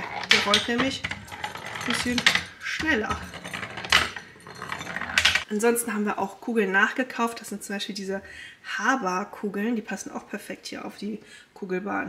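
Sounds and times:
wooden balls clattering down rails: 0.0 - 5.5.

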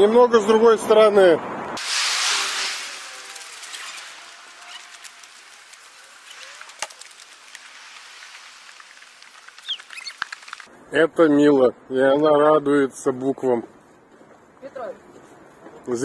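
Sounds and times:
hissing rush: 1.8 - 10.7
scattered clicks: 8.7 - 10.7.

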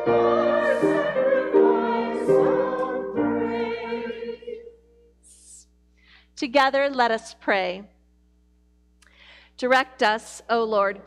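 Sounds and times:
piano accompaniment: 0.0 - 4.4
choir singing a hymn: 0.0 - 5.0.

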